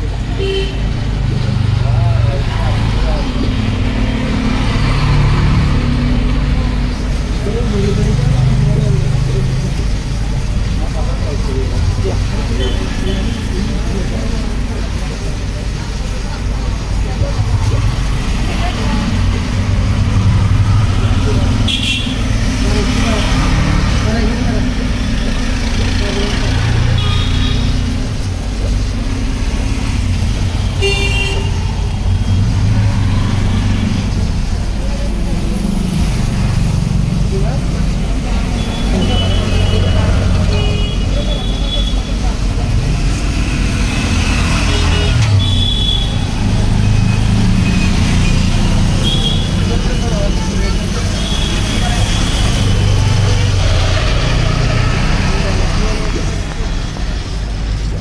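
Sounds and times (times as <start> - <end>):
road traffic rumble: 0.0 - 58.0
horn toots: 44.0 - 49.8.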